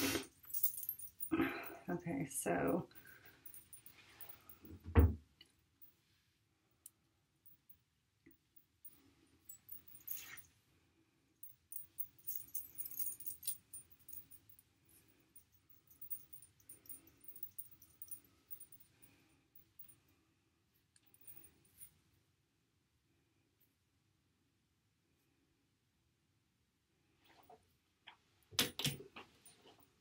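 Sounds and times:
bracelet clicks and jingles: 0:00.3 - 0:01.4, 0:08.6 - 0:10.5, 0:11.4 - 0:14.6, 0:15.4 - 0:19.0.

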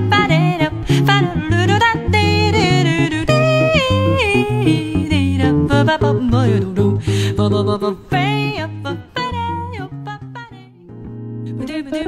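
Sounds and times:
electric guitar bass notes and chords: 0:00.0 - 0:11.8
woman singing wordless jazz vocal: 0:00.0 - 0:12.0.

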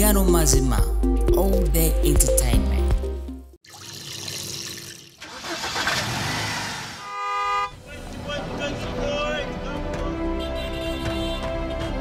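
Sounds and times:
music with a voice: 0:00.0 - 0:03.4, 0:08.0 - 0:11.0
short horn blast: 0:07.0 - 0:07.8.

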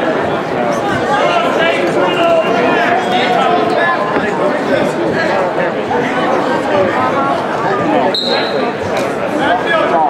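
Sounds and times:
crowd babble: 0:00.0 - 0:10.0
short high whistle tone: 0:08.1 - 0:08.7.

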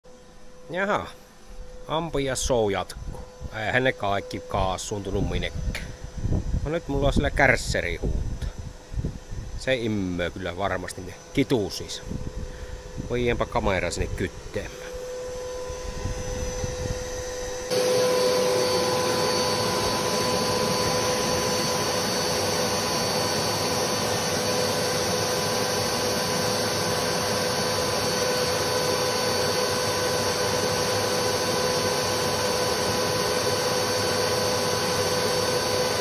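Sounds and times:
vacuum cleaner running: 0:00.1 - 0:36.0.

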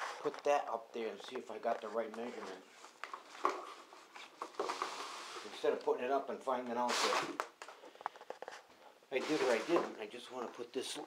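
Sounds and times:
light rustling and handling: 0:00.1 - 0:06.0.

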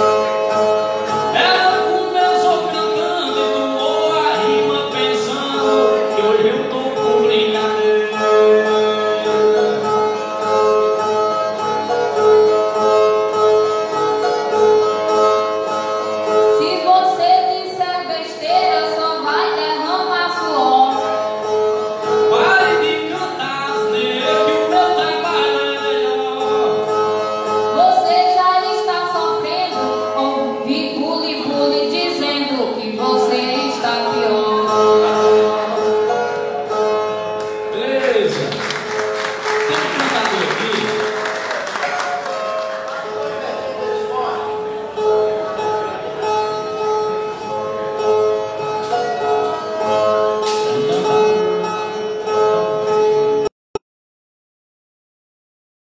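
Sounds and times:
person singing: 0:01.3 - 0:09.4, 0:22.3 - 0:26.9, 0:50.7 - 0:51.8.

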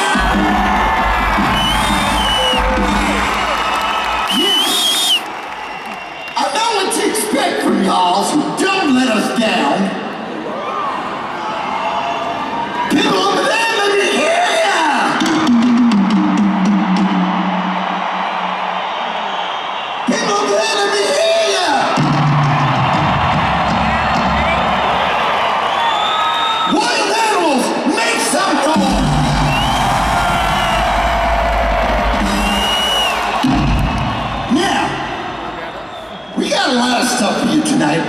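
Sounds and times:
large crowd noise: 0:00.0 - 0:38.0
high whistles: 0:01.4 - 0:06.5, 0:25.6 - 0:26.7, 0:29.4 - 0:31.2, 0:32.2 - 0:34.5, 0:35.6 - 0:36.6.

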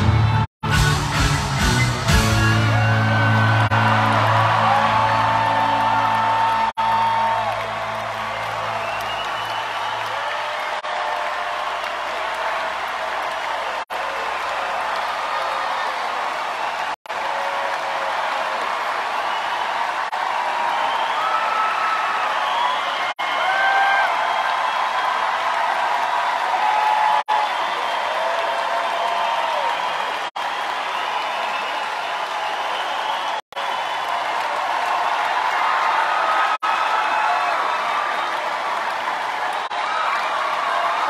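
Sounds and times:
crowd cheering and applauding: 0:00.0 - 0:41.0
shouts and whoops: 0:02.6 - 0:41.0.

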